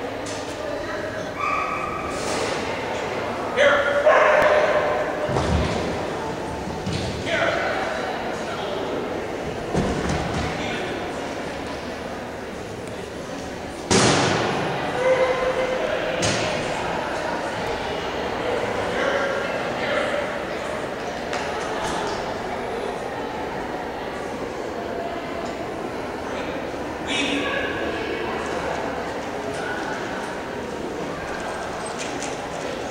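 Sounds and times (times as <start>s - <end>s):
faint indistinct voices: 0.0s - 32.9s
indoor hall background noise: 0.0s - 32.9s
rumbling arena background noise: 0.0s - 32.9s.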